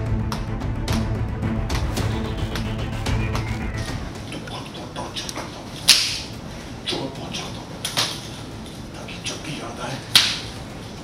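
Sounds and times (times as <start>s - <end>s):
whip cracks: 5.9s - 6.3s, 10.1s - 10.5s.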